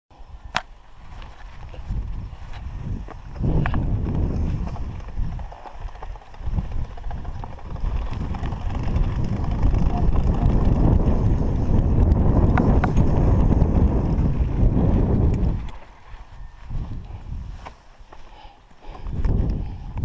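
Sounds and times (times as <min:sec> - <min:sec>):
bike tyres rumbling and rattling: 0:00.2 - 0:20.0.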